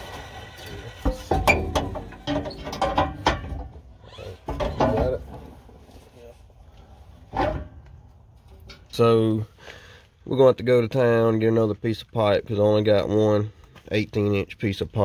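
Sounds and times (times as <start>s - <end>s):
metal exhaust pipe clanking: 0.0s - 5.5s, 7.2s - 9.0s.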